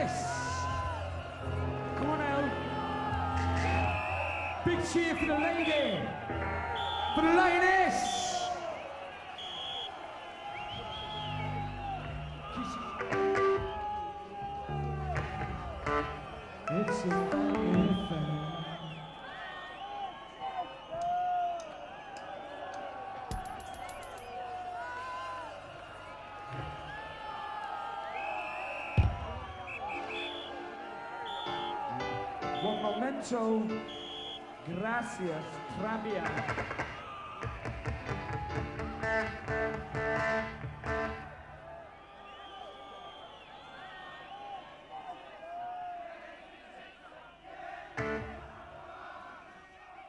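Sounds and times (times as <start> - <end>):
crowd noise: 0.0 - 50.0
man's voice: 16.7 - 18.8, 34.7 - 36.5.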